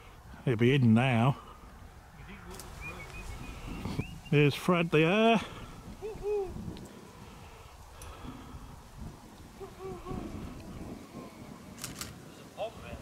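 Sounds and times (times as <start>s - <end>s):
wind rumble on microphone: 2.2s - 4.4s, 5.4s - 13.0s.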